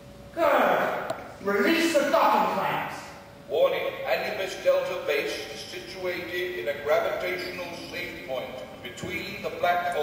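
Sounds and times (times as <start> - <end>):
man speaking in large hall: 3.4 - 10.0.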